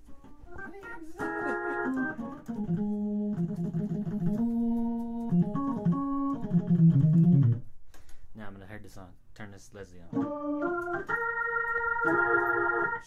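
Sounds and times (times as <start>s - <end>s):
organ chords and notes: 0.0s - 7.7s, 10.1s - 13.0s.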